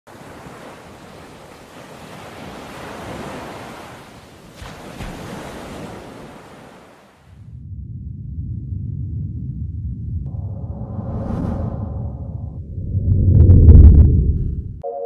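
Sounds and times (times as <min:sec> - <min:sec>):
ocean surf washing: 0:00.1 - 0:07.4
deep low bass: 0:07.5 - 0:14.8.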